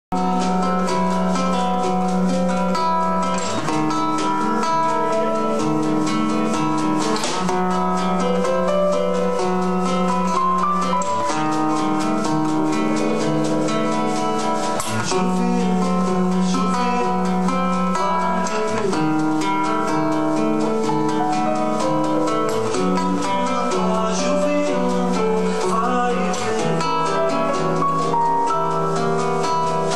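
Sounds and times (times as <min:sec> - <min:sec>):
acoustic guitars strummed: 0:00.1 - 0:29.9
percussion: 0:00.1 - 0:29.9.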